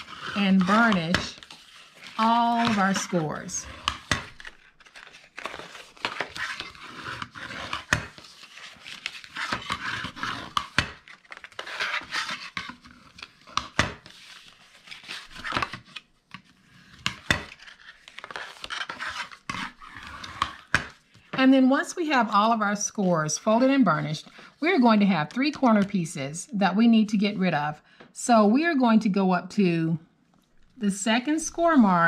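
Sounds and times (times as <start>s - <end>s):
cardstock scraping and rustling: 0.0s - 21.3s.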